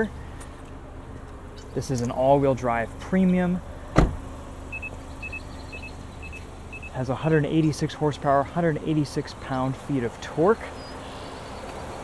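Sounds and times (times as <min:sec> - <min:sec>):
car warning double beeps: 0:04.0 - 0:07.0.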